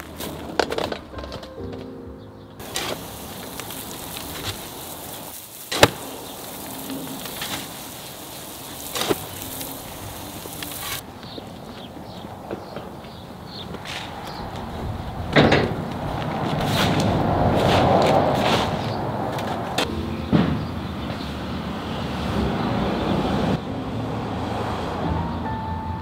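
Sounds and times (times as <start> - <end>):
background music: 0.6 - 3.0, 19.9 - 26.0.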